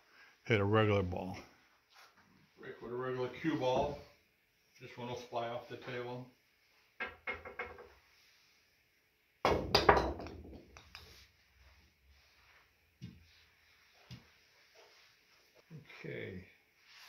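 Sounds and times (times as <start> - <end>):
cue striking ball: 9.5 - 10.7.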